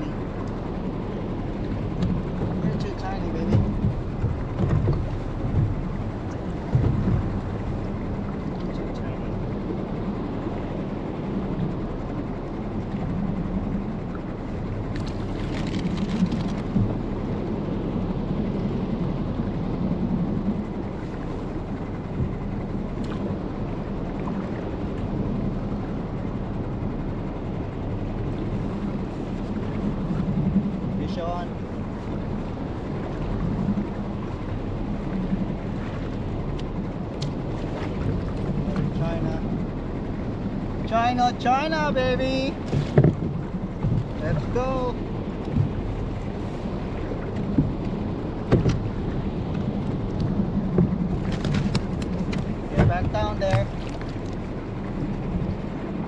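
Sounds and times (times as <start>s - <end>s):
water noise: 0.0s - 56.0s
wind: 0.0s - 56.0s.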